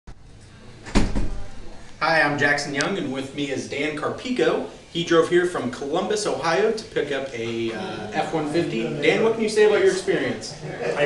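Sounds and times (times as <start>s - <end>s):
sudden thump: 0.9s - 1.4s.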